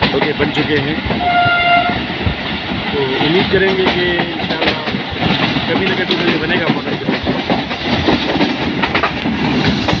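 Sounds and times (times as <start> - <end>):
train wheels on rails: 0.0 - 10.0
knocks and rattles: 2.6 - 10.0.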